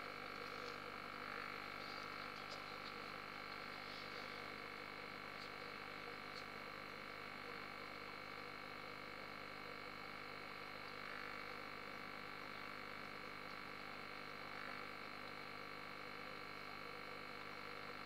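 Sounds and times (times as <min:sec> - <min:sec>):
aquarium pump humming: 0:00.0 - 0:18.0.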